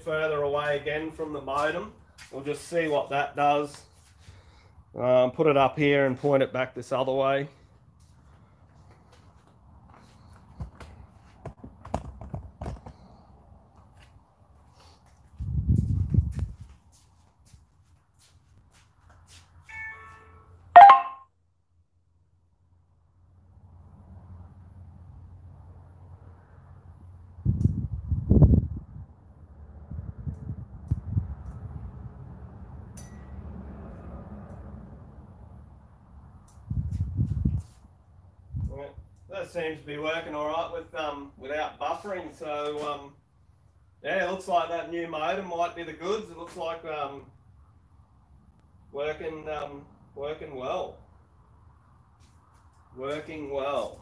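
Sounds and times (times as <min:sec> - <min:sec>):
sharp ringing ding: 0:19.7 - 0:21.2, 0:33.0 - 0:33.4.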